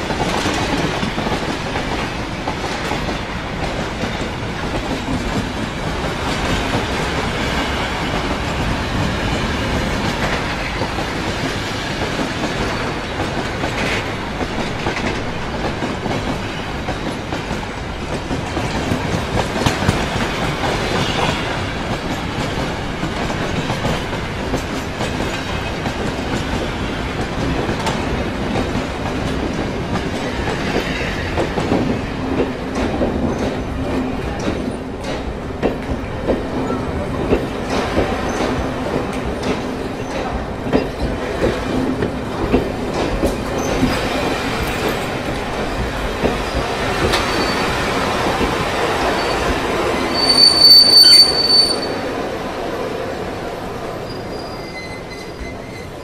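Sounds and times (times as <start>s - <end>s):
train rumbling and clattering: 0.0s - 56.0s.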